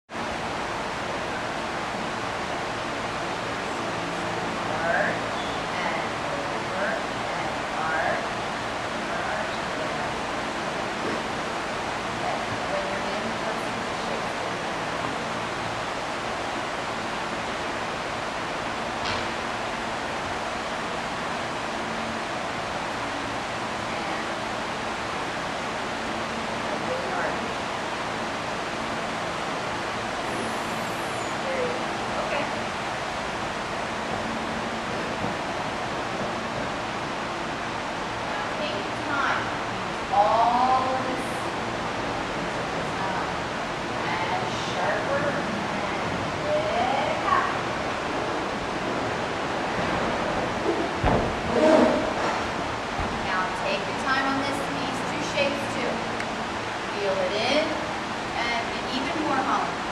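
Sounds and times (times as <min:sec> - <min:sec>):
steady rushing noise: 0:00.1 - 0:59.9.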